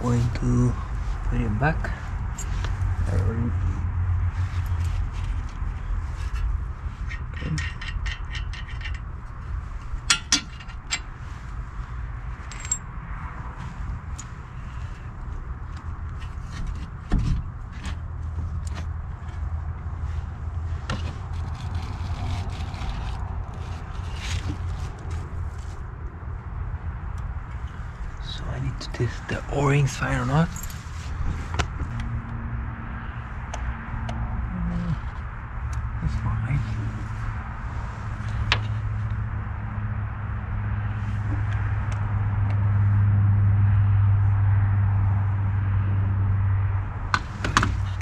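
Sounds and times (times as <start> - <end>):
steady low rumble: 0.0 - 48.0
metal clinks and scrapes: 1.8 - 3.1, 4.4 - 11.4, 12.3 - 12.9, 29.7 - 31.5.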